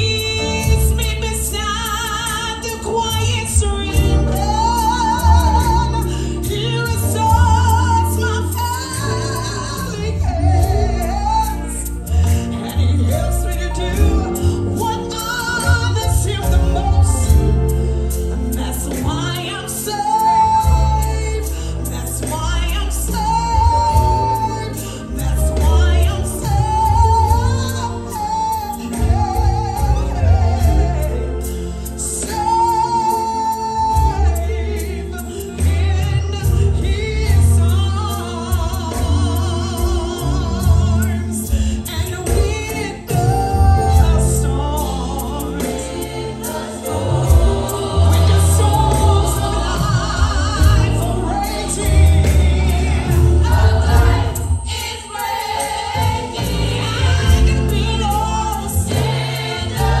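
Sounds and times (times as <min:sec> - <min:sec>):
band playing: 0:00.0 - 1:00.0
gospel choir singing: 0:00.0 - 1:00.0
woman singing lead: 0:00.0 - 1:00.0.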